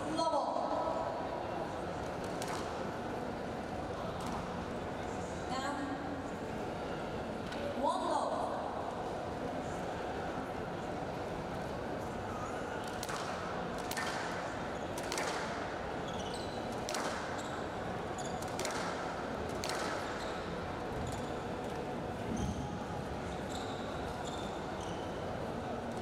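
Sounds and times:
court shoes squeaking: 0:16.0 - 0:19.0, 0:19.6 - 0:25.4.

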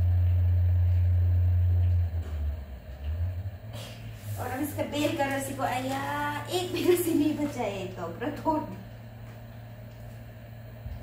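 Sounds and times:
loud low hum: 0:00.0 - 0:11.0.

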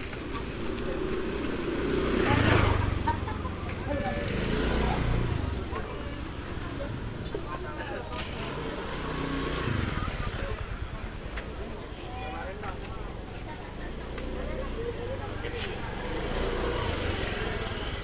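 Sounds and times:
chatter of voices: 0:00.0 - 0:18.0
motor scooters passing: 0:00.0 - 0:18.0.

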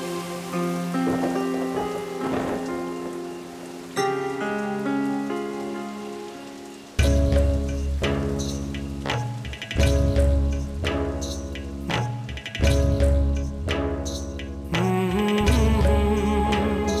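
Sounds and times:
background score of held notes: 0:00.0 - 0:07.6
heavy rain falling: 0:00.0 - 0:17.0.

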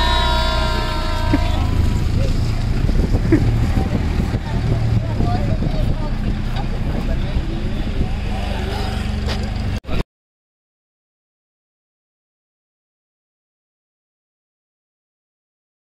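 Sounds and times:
old vehicle engine rumbling: 0:00.0 - 0:10.0
passengers chattering and calling out: 0:00.0 - 0:10.0.

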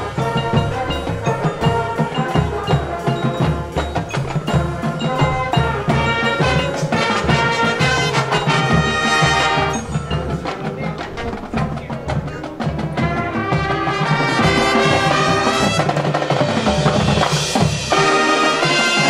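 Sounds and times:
drum hits: 0:00.0 - 0:19.0
marching band playing: 0:00.0 - 0:19.0.

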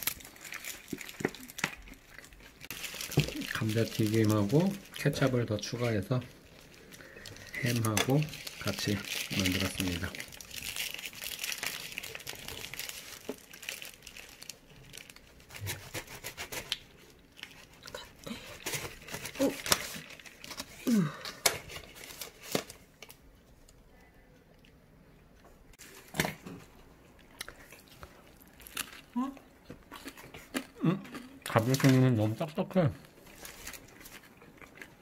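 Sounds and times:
paper wrapper crinkling: 0:00.0 - 0:23.2, 0:31.5 - 0:34.9.

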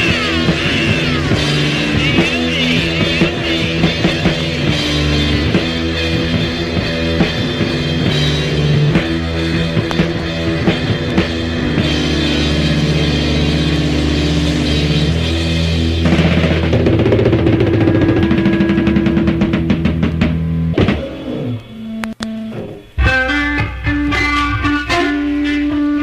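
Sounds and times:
heavy psychedelic rock band: 0:00.0 - 0:26.0
picked guitar riff: 0:00.0 - 0:26.0.

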